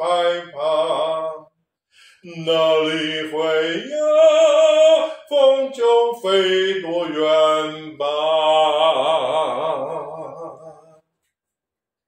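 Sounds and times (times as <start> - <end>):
man singing held note with vibrato: 0.0 - 11.0.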